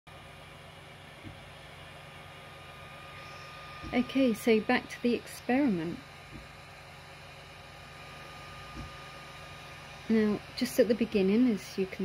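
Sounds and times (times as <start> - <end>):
printer fans and motors humming: 0.1 - 12.0.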